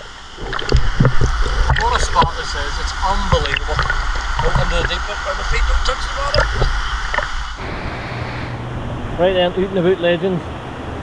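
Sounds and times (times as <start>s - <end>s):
water sloshing and gurgling: 0.0s - 7.8s
water rushing from small cascade: 0.0s - 8.0s.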